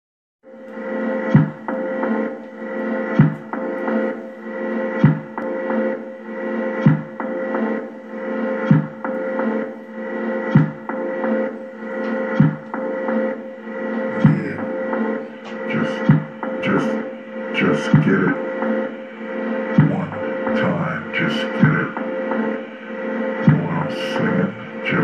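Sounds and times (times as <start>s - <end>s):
sustained electronic drone: 0.5s - 25.0s.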